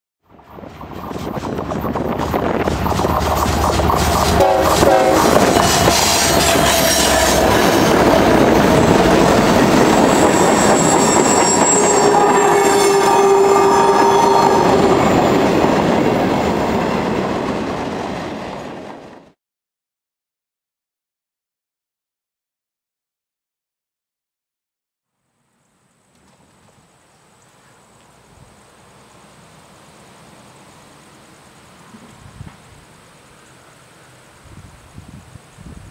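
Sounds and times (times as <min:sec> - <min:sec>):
freight train wheels clattering: 0:00.4 - 0:13.0
train wheels squealing: 0:05.2 - 0:15.6.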